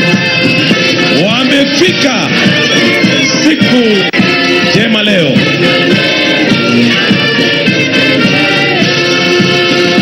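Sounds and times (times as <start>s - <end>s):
band accompaniment: 0.0s - 10.0s
choir singing: 5.4s - 9.9s.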